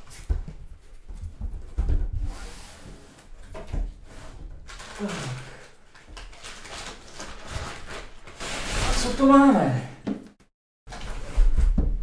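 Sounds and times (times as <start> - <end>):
packing paper rustling: 4.6 - 9.5.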